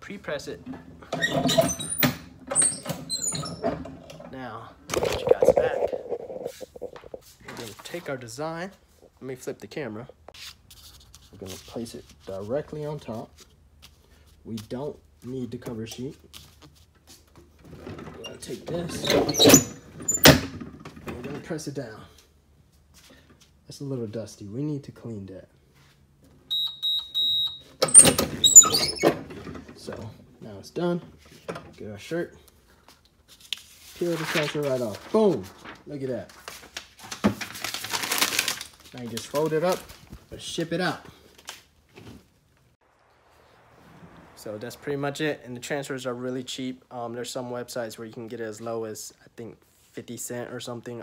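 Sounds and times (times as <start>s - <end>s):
metal clatter and squeaks: 0.6s - 4.5s, 17.6s - 21.4s, 27.8s - 29.9s
heat press timer beeps: 26.5s - 28.1s
high squeaks: 26.5s - 29.2s.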